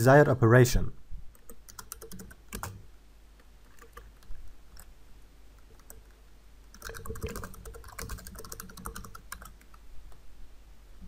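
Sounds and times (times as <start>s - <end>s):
typing on computer keyboard: 1.3s - 2.8s, 3.6s - 4.9s, 5.6s - 9.8s.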